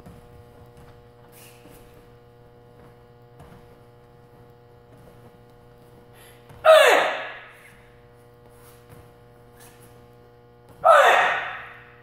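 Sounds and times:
electrical hum: 0.0 - 12.0
woman's sharp shout: 6.7 - 7.5, 10.8 - 11.8.

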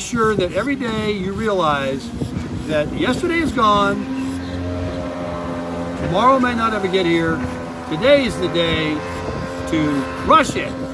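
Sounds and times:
low mechanical drone: 0.0 - 10.9.

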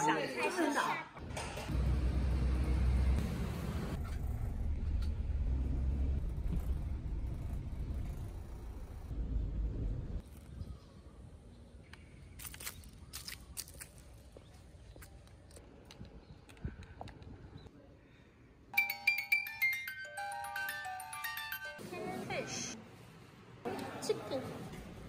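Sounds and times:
engine and road rumble: 1.2 - 10.5.

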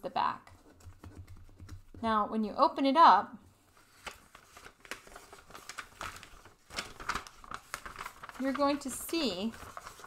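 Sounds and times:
paper rustling and crinkling: 3.7 - 10.0.

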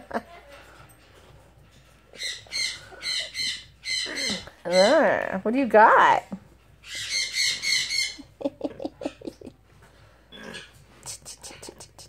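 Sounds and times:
parrot calling: 2.1 - 5.4, 6.8 - 9.4.

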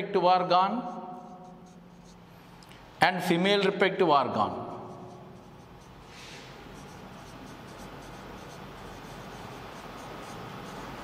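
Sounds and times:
marker pen writing on whiteboard: 0.4 - 2.6, 4.4 - 11.0.

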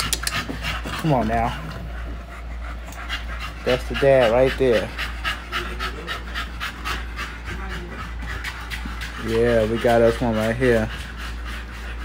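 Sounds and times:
dog panting rapidly: 0.0 - 12.0.

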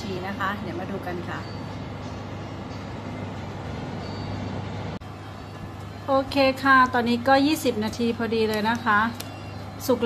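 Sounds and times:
oven fan humming: 0.0 - 10.0.

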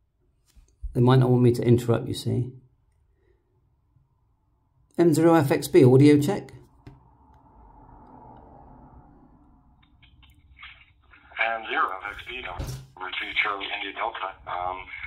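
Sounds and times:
man talking over radio speaker: 11.2 - 15.0.

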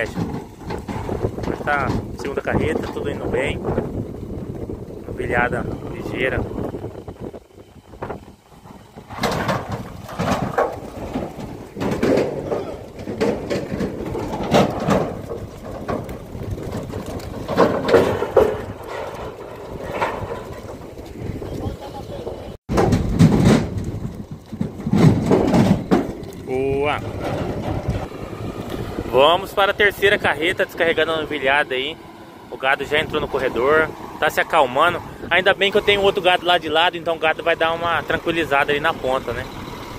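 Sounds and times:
hooves knocking on trailer floor: 0.0 - 39.9
people calling: 12.2 - 13.0, 21.3 - 22.6.

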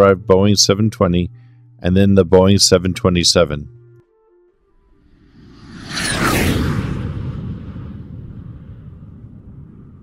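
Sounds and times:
jet flyby: 5.0 - 10.0.

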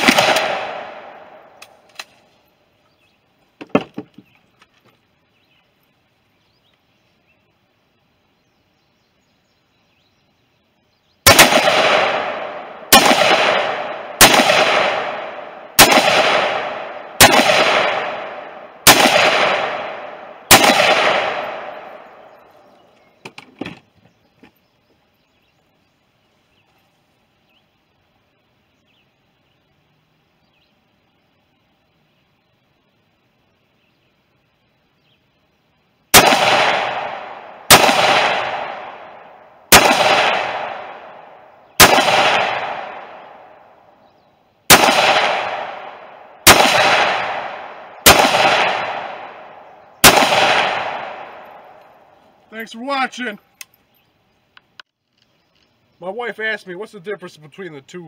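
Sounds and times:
rifle shots echoing: 0.0 - 2.2, 11.2 - 22.7, 36.1 - 43.9, 44.6 - 52.1
metallic clicks of rifle handling: 1.6 - 2.2.

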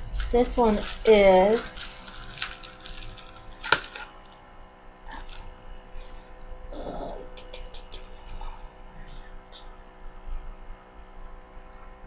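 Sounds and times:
faint steady hum: 0.0 - 12.0
packaging clicks and rustles: 0.2 - 4.3.

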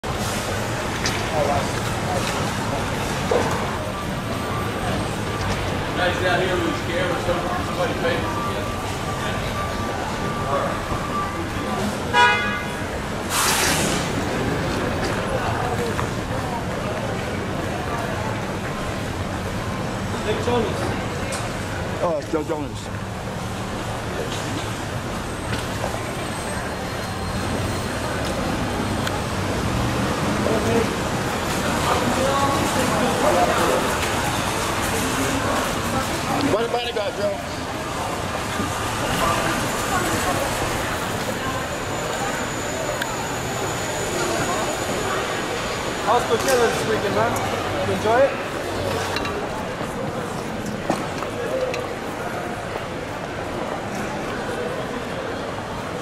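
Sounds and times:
steady traffic: 0.0 - 56.0.

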